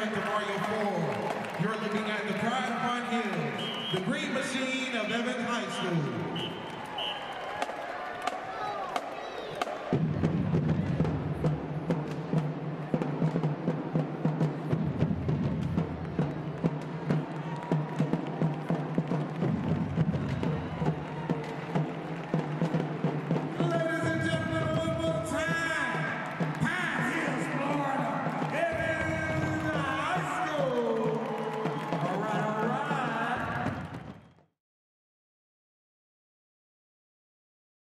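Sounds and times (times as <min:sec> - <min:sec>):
drumline playing cadence: 0:00.0 - 0:34.4.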